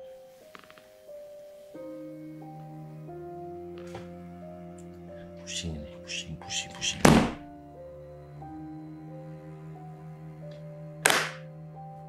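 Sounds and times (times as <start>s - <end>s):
background music with held tones: 0.0s - 12.0s.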